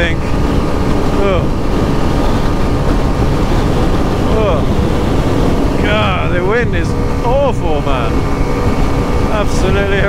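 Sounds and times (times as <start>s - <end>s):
motorcycle engine running: 0.0s - 10.0s
wind buffeting microphone: 0.0s - 10.0s.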